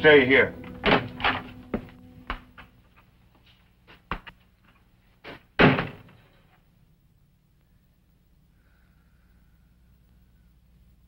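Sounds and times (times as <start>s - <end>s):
door slamming: 0.7s - 1.5s, 5.6s - 6.3s.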